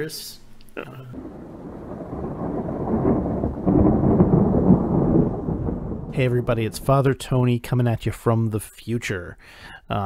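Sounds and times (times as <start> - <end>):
low rumbling noise: 1.1 - 7.6.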